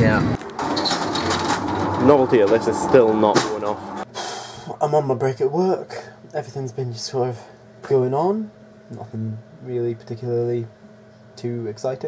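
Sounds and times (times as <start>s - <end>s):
car cabin road rumble: 0.0s - 4.0s.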